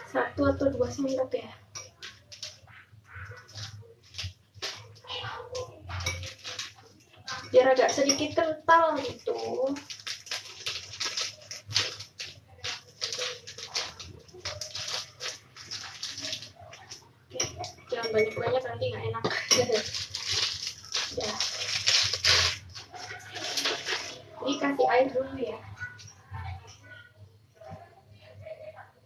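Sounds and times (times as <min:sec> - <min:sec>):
water running and splashing: 0:08.9 - 0:18.0, 0:19.4 - 0:24.4.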